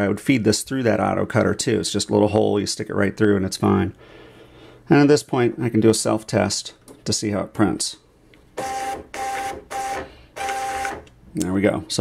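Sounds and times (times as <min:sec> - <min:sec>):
printer feed motor whining: 0:08.6 - 0:11.1.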